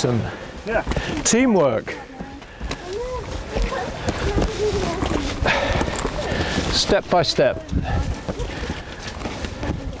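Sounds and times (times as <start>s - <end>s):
footsteps on rocky leafy trail: 0.1s - 10.0s.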